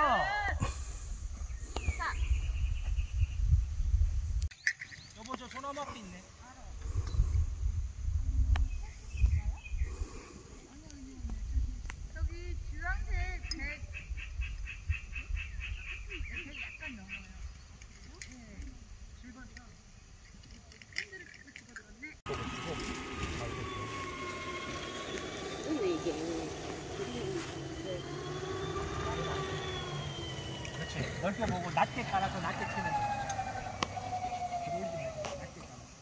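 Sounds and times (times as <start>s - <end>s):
wind noise on microphone: 0.0s - 4.5s, 6.7s - 17.7s
wailing rising and falling tone: 22.3s - 35.6s.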